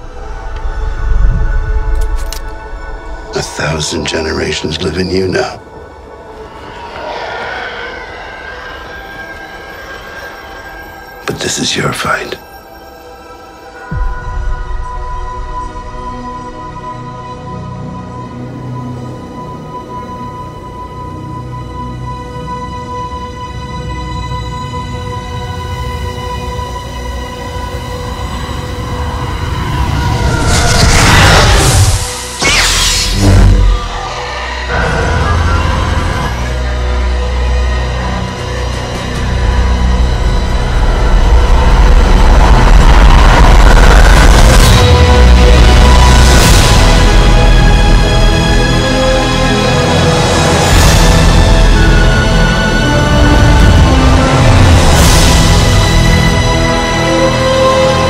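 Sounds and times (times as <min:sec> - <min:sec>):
spacecraft engine roar with whine: 0:00.0 - 0:11.4, 0:15.6 - 0:49.6
low drone with held tones: 0:02.6 - 0:49.7.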